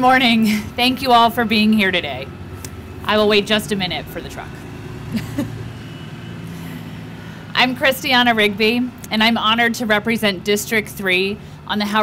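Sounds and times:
truck engine running: 0:00.0 - 0:12.0.

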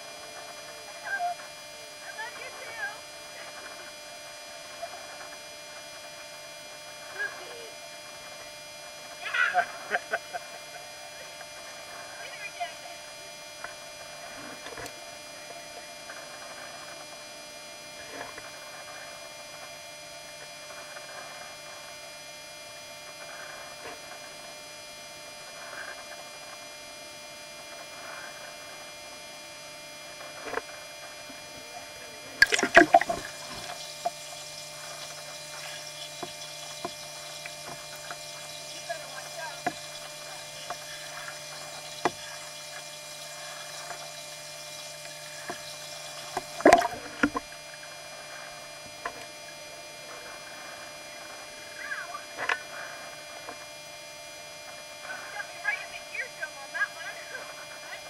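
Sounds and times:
steady hum: 0:00.0 - 0:58.0
loud splashing and knocks: 0:32.4 - 0:33.3
pool water lapping and splashing: 0:32.4 - 0:49.4.

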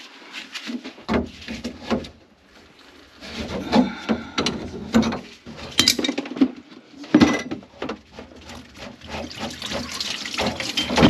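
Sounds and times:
dishes and utensils clattering: 0:03.3 - 0:11.0.

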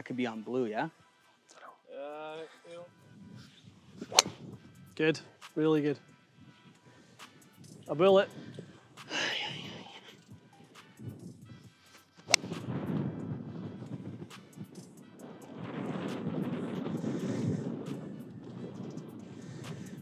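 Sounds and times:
background music: 0:00.0 - 0:20.0
golf club striking ball: 0:04.0 - 0:04.4, 0:12.3 - 0:12.7.

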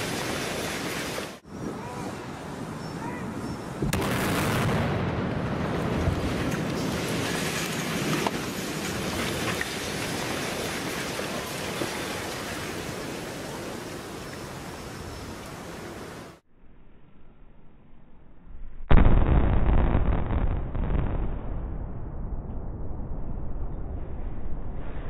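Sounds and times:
rumbling roar of collapsing bridge: 0:03.9 - 0:14.3
explosive charges detonating: 0:18.9 - 0:24.0.

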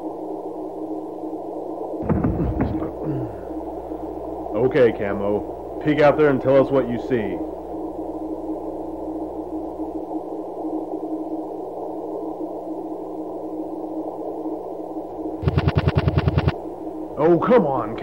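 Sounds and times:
muffled low ambient drone: 0:00.0 - 0:18.0
rapid stutter of sharp pulses: 0:15.4 - 0:16.6.

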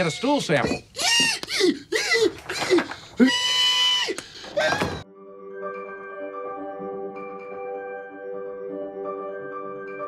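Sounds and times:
man squealing in falsetto: 0:00.0 - 0:05.0.

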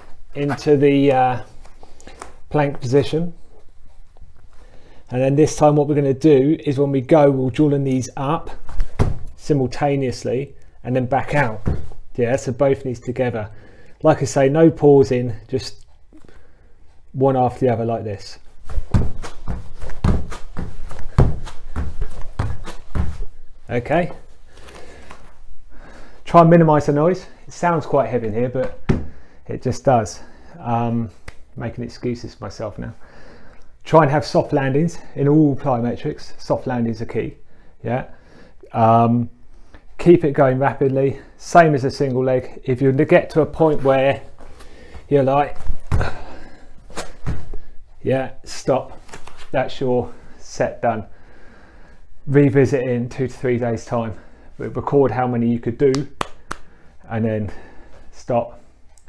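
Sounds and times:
feet thudding on exercise mat: 0:08.7 - 0:09.3, 0:18.6 - 0:23.4, 0:28.6 - 0:29.2, 0:44.3 - 0:47.7
hard breathing: 0:13.5 - 0:14.0, 0:16.1 - 0:17.1, 0:24.3 - 0:26.3, 0:28.9 - 0:29.5, 0:33.0 - 0:33.8, 0:44.3 - 0:45.1, 0:46.0 - 0:47.9, 0:51.1 - 0:52.2.

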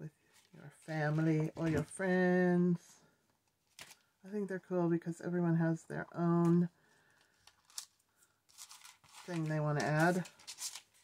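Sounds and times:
clicks and rustles of beads: 0:07.1 - 0:11.0.

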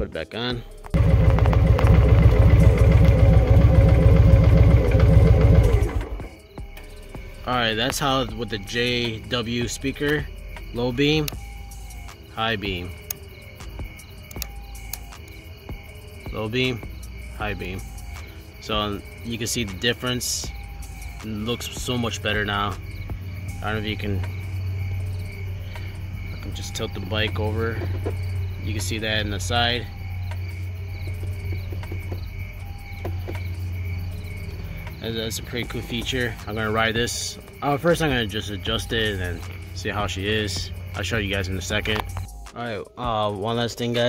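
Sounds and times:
constant low hum: 0:00.0 - 0:44.0
crickets chirping: 0:00.0 - 0:44.0
low rumble: 0:00.9 - 0:07.3
sharp clicks: 0:14.2 - 0:15.4.

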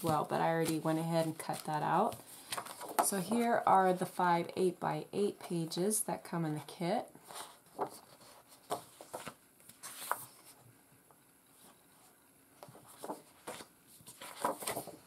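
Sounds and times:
paper rustling and sliding: 0:07.2 - 0:10.6, 0:12.6 - 0:15.0.

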